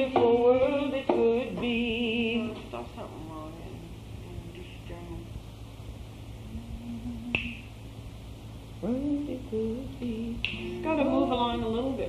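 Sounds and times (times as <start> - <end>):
constant low hum: 0.0 - 12.0
sharp click: 7.3 - 7.7.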